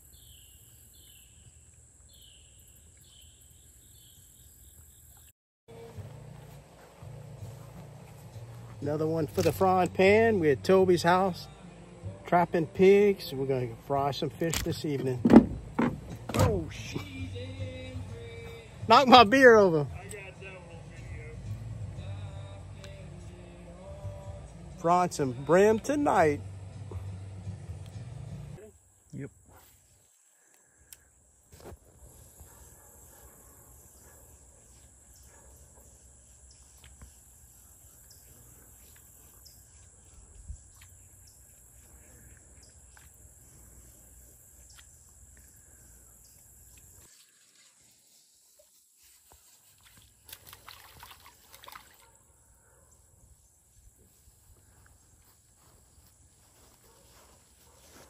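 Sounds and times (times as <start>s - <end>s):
high insect drone: 25.5s - 52.5s
rustles: 36.2s - 51.6s, 54.0s - 58.0s.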